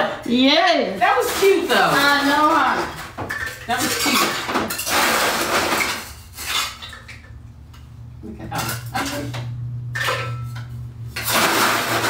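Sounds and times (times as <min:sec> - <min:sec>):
dishes and cutlery clattering: 0:01.2 - 0:07.4, 0:08.5 - 0:12.0
low steady hum: 0:02.9 - 0:12.0.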